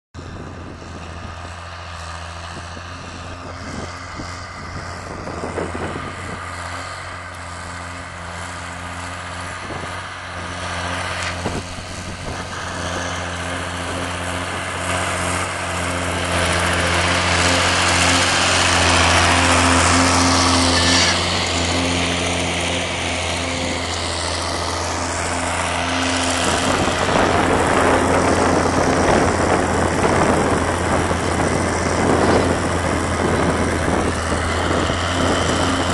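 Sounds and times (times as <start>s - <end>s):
tractor diesel engine running: 0.2s - 35.9s.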